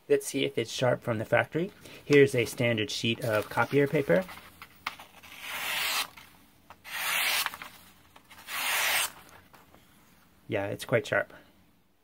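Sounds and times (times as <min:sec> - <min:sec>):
knife slicing paper: 0:05.0 - 0:06.2, 0:06.9 - 0:09.2.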